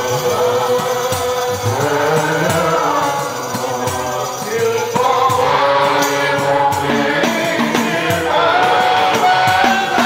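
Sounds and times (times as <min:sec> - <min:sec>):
men chanting in unison: 0:00.0 - 0:10.0
sharp percussive strokes: 0:00.0 - 0:10.0.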